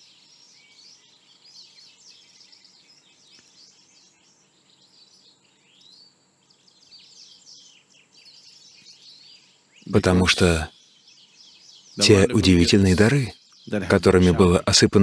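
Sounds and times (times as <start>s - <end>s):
small birds chirping: 0.0s - 15.0s
steady high tone: 12.0s - 13.3s.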